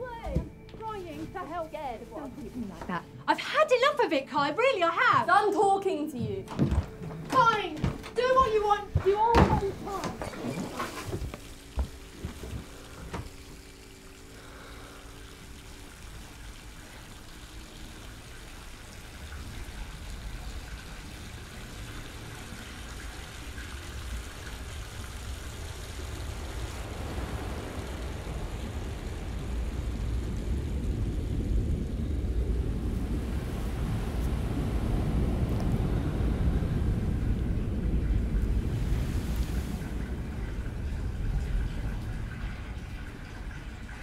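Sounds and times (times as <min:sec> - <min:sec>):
low rumbling noise: 0:06.7 - 0:44.0.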